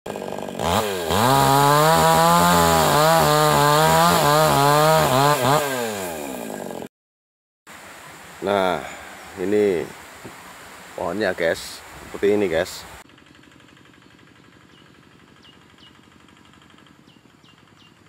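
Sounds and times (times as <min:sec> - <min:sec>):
chainsaw cutting wood: 0:00.1 - 0:06.9, 0:13.0 - 0:17.7.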